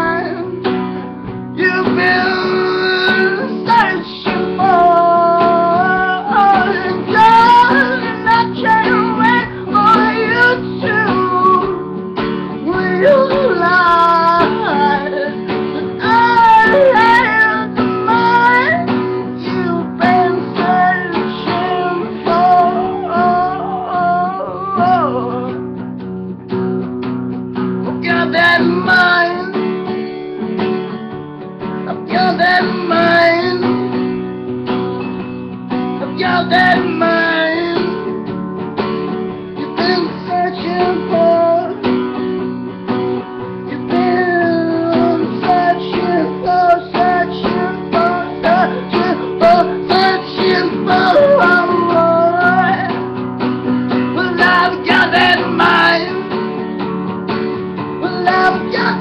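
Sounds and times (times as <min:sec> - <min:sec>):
man singing: 0:00.0 - 0:25.8, 0:27.8 - 0:29.9, 0:31.8 - 0:34.4, 0:35.8 - 0:38.2, 0:39.6 - 0:42.4, 0:43.4 - 0:56.6, 0:57.9 - 0:59.0
acoustic guitar strumming: 0:00.0 - 0:59.0.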